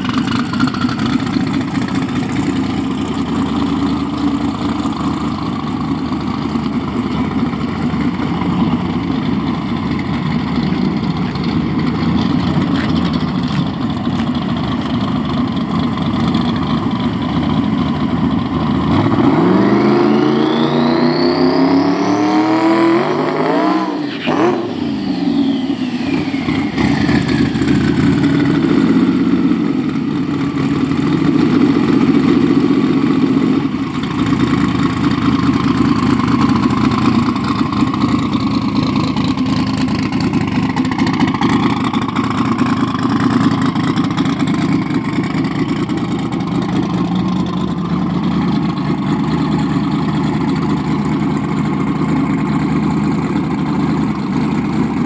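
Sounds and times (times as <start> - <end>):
pickup engine idling loudly: 0.0 - 21.2, 23.4 - 55.0
engine whine falling in pitch: 19.2 - 30.0.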